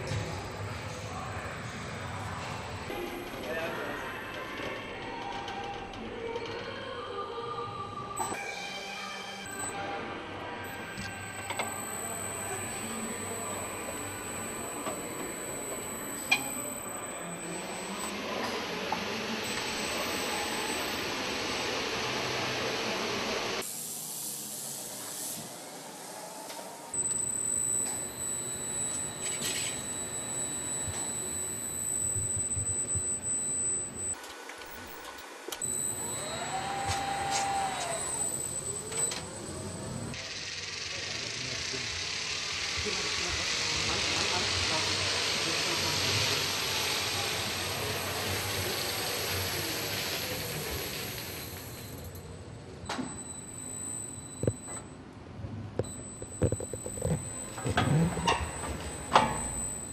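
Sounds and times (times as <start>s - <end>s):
conveyor machinery hum and hiss: 7.0s - 54.5s
motor whine: 10.7s - 52.0s, 55.8s - 59.9s.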